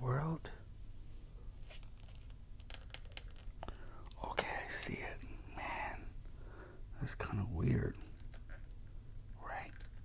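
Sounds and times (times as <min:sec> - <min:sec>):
soft whispered voice: 0:04.0 - 0:06.1, 0:09.4 - 0:10.0.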